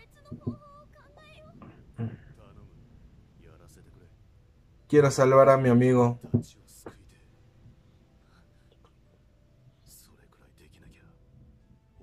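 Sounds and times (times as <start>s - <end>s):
high-pitched female voice speaking: 0.0s - 1.6s.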